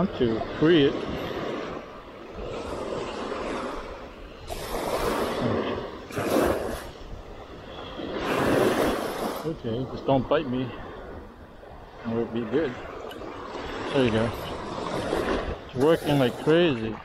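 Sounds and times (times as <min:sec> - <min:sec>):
small waves washing on sandy beach: 0:00.0 - 0:17.0.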